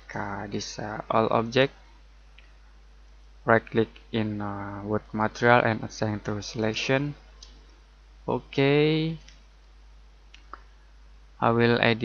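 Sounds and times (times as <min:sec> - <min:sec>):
low microphone hiss: 0:00.0 - 0:12.0.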